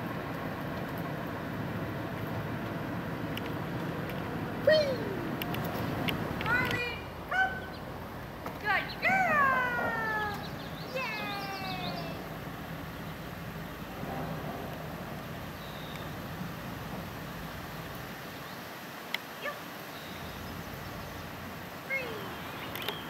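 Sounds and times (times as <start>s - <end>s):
small clicks: 2.2s - 4.3s, 5.3s - 6.9s, 22.6s - 23.0s
person calling a dog: 4.6s - 5.4s, 6.4s - 7.8s, 8.7s - 12.3s.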